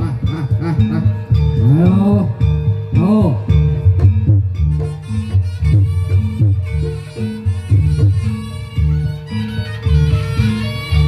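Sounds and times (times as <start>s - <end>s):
drums beating a rhythm: 0.0s - 11.0s
held drone tone: 0.0s - 11.0s
reedy shawm melody: 0.0s - 11.0s.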